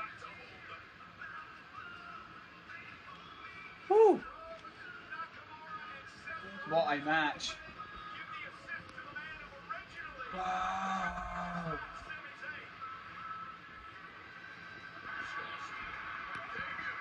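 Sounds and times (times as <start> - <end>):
tv commentator's voice: 0.0 - 17.0.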